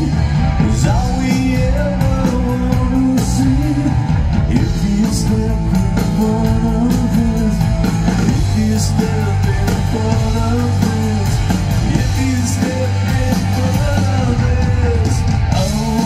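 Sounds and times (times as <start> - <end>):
live rock band: 0.0 - 16.0
male lead vocal: 0.0 - 16.0.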